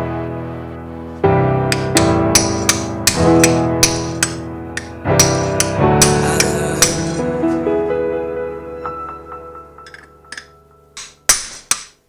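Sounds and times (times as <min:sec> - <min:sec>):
string and piano music: 0:00.0 - 0:12.0
hammer striking steel punch: 0:01.7 - 0:07.2, 0:09.9 - 0:12.0.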